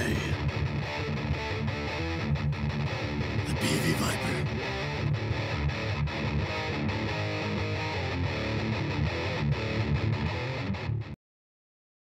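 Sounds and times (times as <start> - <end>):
distorted electric guitar riff: 0.0 - 11.1.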